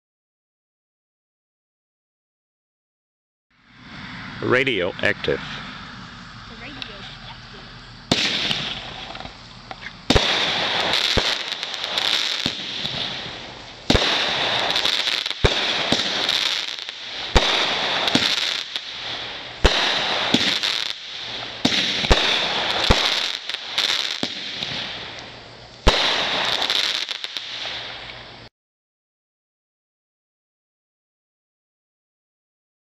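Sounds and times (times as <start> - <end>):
firework crackling burst: 3.6 - 28.5
firework launch thump: 8.1 - 16.3.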